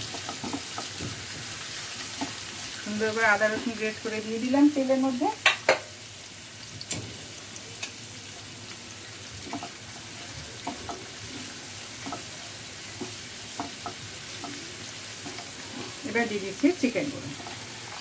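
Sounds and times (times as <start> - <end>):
onion sizzling in hot oil: 0.0 - 18.0.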